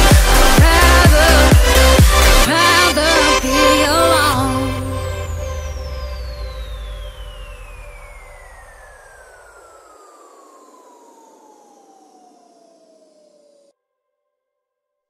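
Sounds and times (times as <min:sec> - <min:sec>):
electronic dance music: 0:00.0 - 0:09.1
falling synth sweep: 0:00.0 - 0:13.7.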